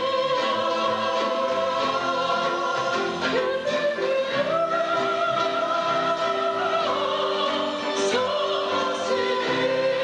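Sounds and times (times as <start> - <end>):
keyboard: 0.0 - 10.0
mixed choir singing: 0.0 - 10.0
violin: 0.0 - 10.0.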